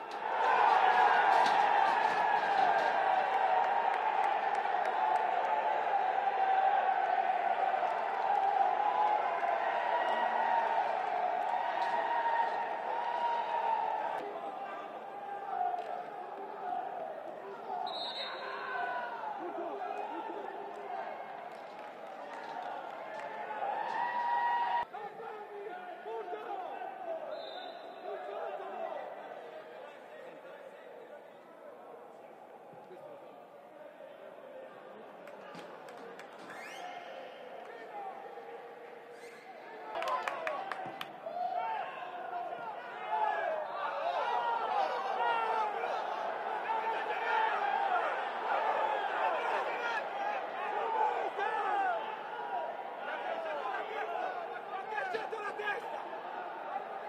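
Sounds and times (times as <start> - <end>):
crowd cheering and shouting: 0.0 - 30.3, 34.4 - 57.0
men shouting and calling: 41.4 - 57.0.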